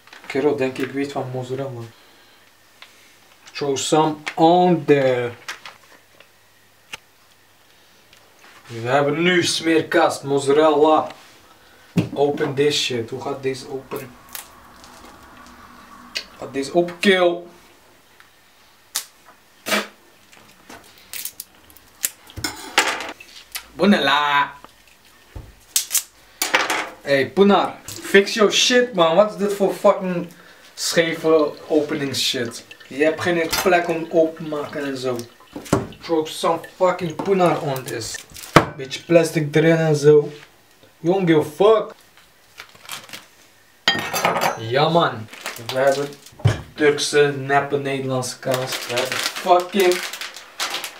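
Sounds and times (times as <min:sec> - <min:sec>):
plastic wrapping crinkling and ripping: 0:20.4 - 0:22.4, 0:25.7 - 0:26.1, 0:37.4 - 0:38.6, 0:42.0 - 0:43.4, 0:45.2 - 0:46.4, 0:48.1 - 0:50.9.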